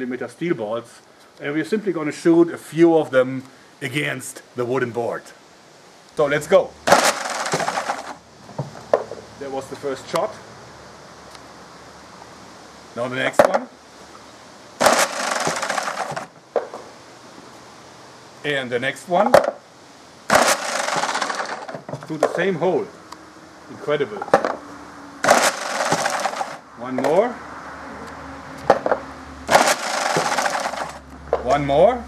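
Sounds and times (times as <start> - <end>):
sharp crack: 6.8 - 8.2, 14.8 - 16.8, 20.3 - 22.4, 25.2 - 27.3, 28.6 - 31.6
steel ball rattling in wooden spiral: 6.9 - 8.2, 14.8 - 16.8, 20.3 - 22.5, 25.2 - 27.2, 29.5 - 31.0.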